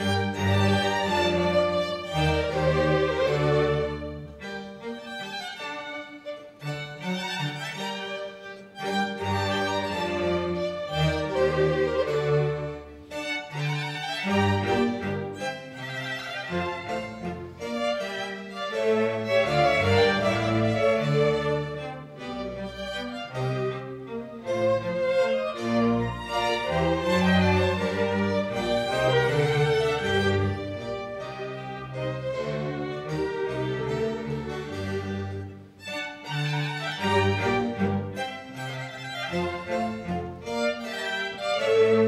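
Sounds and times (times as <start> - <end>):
string orchestra playing slowly: 0.0 - 42.0.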